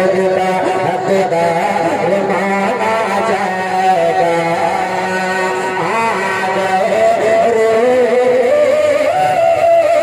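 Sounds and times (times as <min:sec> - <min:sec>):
man singing over pa system: 0:00.0 - 0:10.0.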